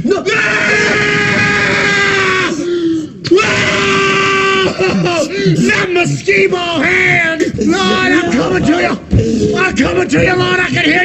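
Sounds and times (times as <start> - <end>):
person screaming: 0.3 - 6.1.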